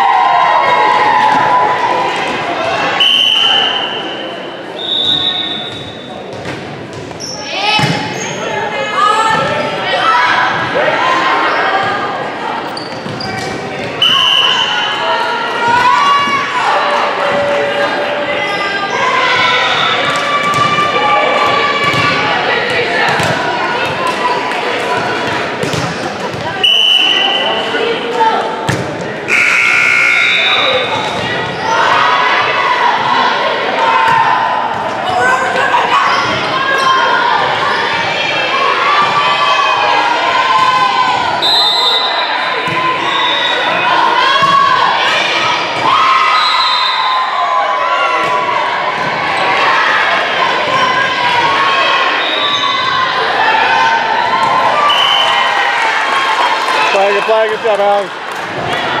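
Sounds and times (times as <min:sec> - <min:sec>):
volleyball hitting hardwood court: 0:06.3 - 0:07.2, 0:07.8 - 0:08.1, 0:21.4 - 0:24.2, 0:24.9 - 0:26.6, 0:28.7 - 0:29.1.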